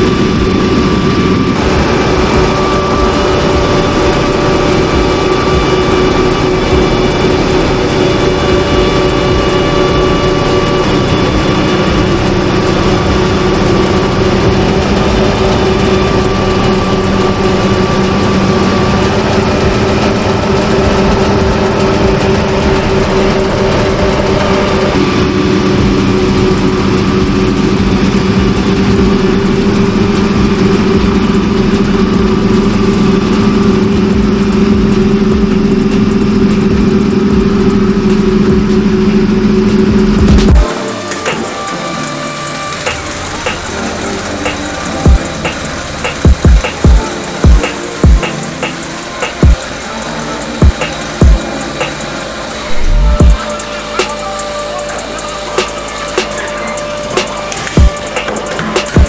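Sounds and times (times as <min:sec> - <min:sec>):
combine harvester engine drone: 0:00.0 - 0:59.0.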